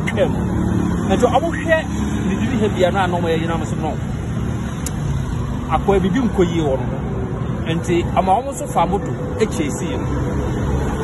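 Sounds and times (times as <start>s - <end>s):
man talking: 0.0s - 0.5s, 1.1s - 4.1s, 5.6s - 10.1s
road traffic rumble: 0.0s - 11.0s.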